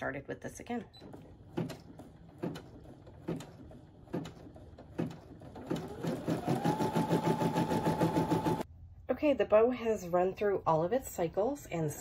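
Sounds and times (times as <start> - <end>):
embroidery machine stitching: 1.0 - 8.6.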